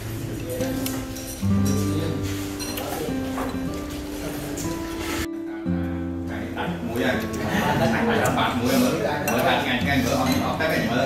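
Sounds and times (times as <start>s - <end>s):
utensils clinking on ceramic bowl: 0.7s - 4.0s.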